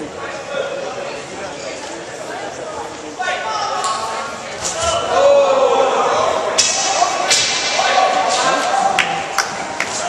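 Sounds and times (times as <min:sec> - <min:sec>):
hubbub of voices in hall: 0:00.0 - 0:10.0.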